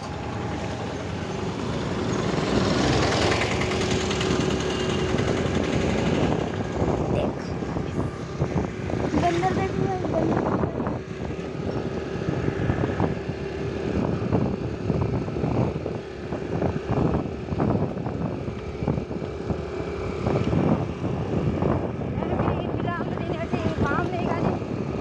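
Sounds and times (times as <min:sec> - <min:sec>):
vehicle running: 0:00.0 - 0:25.0
wind buffeting microphone: 0:00.0 - 0:25.0.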